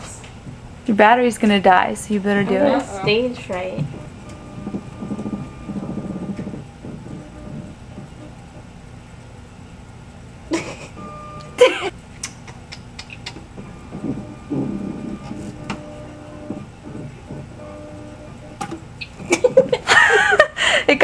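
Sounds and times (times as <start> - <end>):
woman laughing nervously: 10.5 - 11.0, 11.6 - 12.7, 19.2 - 21.0
short electronic tones: 11.0 - 11.8.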